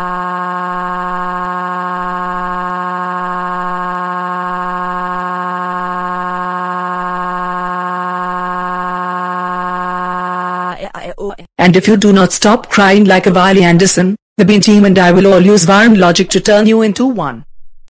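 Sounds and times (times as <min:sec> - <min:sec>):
cartoon character wailing: 0:00.7 - 0:10.8.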